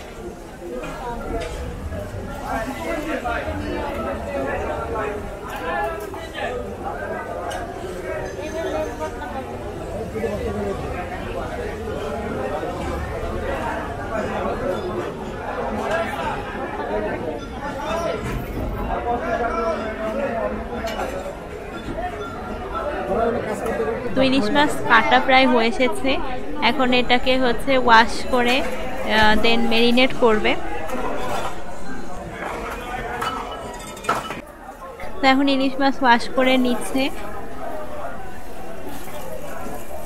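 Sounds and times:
babble of overlapping voices: 0.0 - 40.0.

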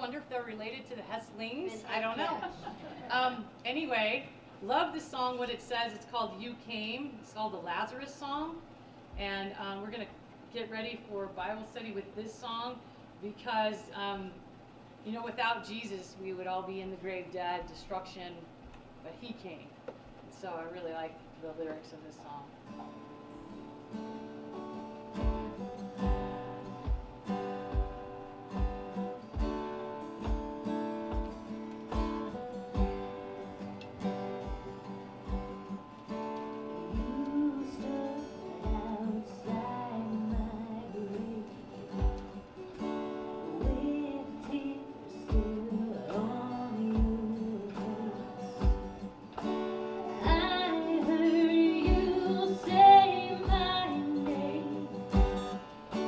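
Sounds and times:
acoustic guitar strumming: 22.5 - 56.0
keyboard accompaniment: 22.8 - 56.0
low steady beat: 25.2 - 42.6, 43.6 - 44.6, 45.3 - 51.2, 51.8 - 52.8, 53.4 - 54.0, 55.1 - 55.6
woman singing: 36.8 - 42.4, 43.4 - 49.1, 49.9 - 55.4.

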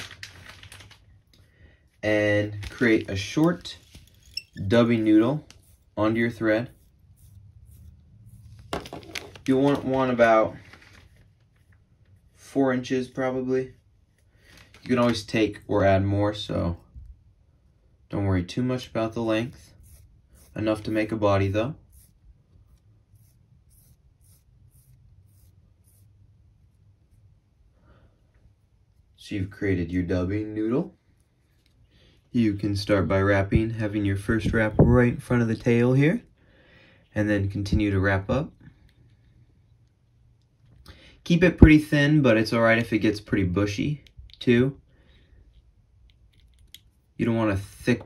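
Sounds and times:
fingertips rubbing fibres: 2.8 - 8.8, 19.2 - 26.2.

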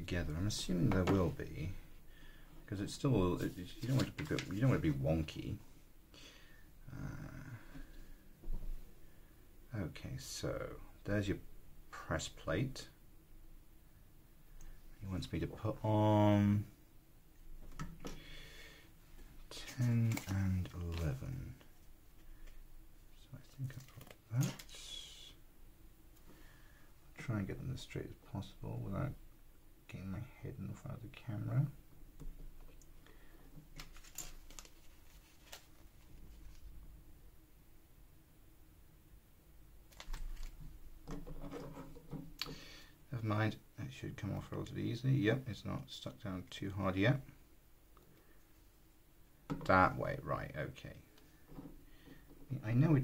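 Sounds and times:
soft rubbing: 0.1 - 6.0, 33.5 - 36.9.

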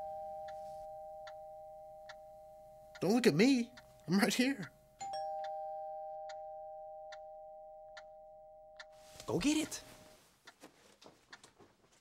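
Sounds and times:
two-note doorbell chime: 0.0 - 2.9, 5.0 - 9.2.

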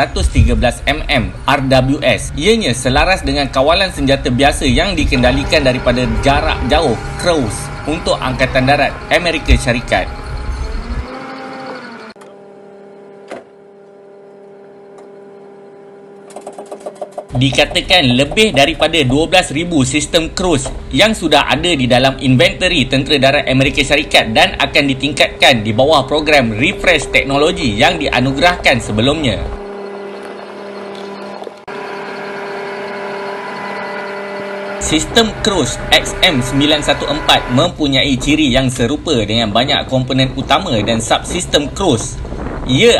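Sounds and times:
low mechanical hum: 0.0 - 42.9
military vehicle engine droning: 0.0 - 42.9
wavering tone: 0.2 - 39.6.

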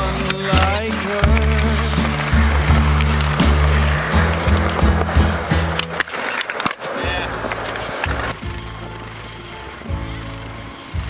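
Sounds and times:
song with bass line: 0.0 - 6.0, 7.1 - 11.0
skateboard clacks: 0.0 - 11.0
skateboard rolling on concrete: 0.0 - 11.0.

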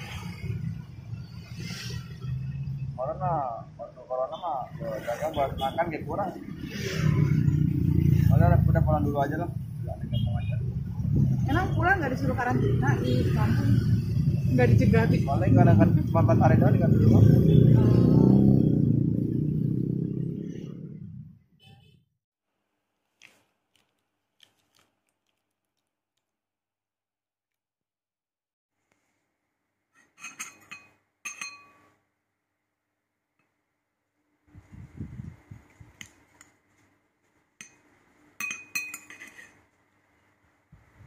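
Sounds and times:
metal spoon clinking on glass bowl: 30.2 - 31.9, 37.6 - 37.8, 38.4 - 39.5.

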